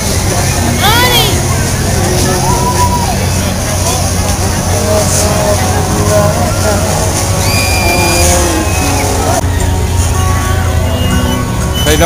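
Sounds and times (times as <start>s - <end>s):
crowd babble: 0.0s - 12.0s
fairground music: 0.0s - 12.0s.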